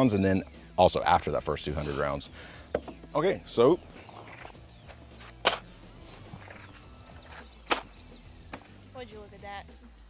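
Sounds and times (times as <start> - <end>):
boxes knocking on wooden table: 2.7 - 3.1.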